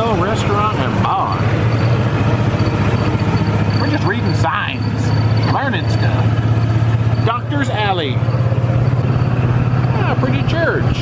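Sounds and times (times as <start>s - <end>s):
golf cart driving: 0.0s - 11.0s.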